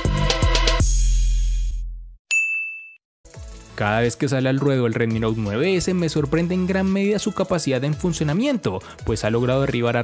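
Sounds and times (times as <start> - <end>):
bright ding: 2.3 - 3.0
background music: 3.3 - 10.0.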